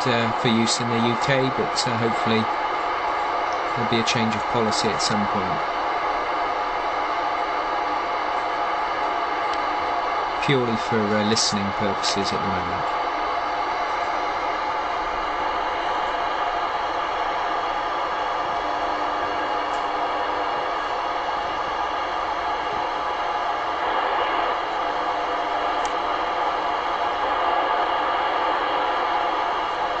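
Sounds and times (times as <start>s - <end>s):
radio static hiss: 0.0s - 30.0s.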